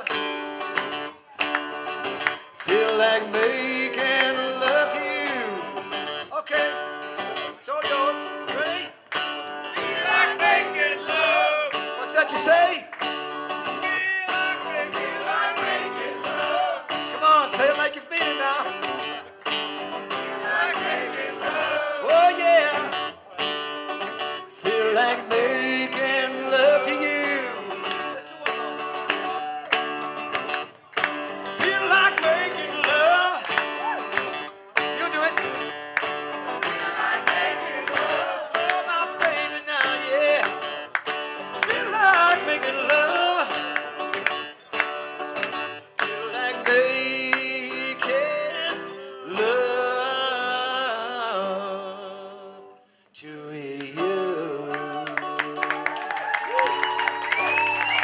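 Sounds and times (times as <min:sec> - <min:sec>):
acoustic guitars playing: 0:00.0 - 0:56.0
man singing: 0:02.5 - 0:09.0, 0:09.8 - 0:12.9, 0:13.7 - 0:19.1, 0:21.3 - 0:23.2, 0:24.4 - 0:29.7, 0:31.5 - 0:34.3, 0:34.9 - 0:35.7, 0:38.1 - 0:40.6, 0:41.5 - 0:44.1, 0:46.1 - 0:56.0.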